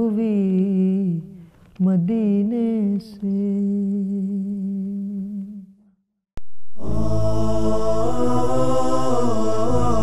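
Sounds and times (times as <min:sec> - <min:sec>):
click: 0:01.5 - 0:01.9
music: 0:06.8 - 0:10.0.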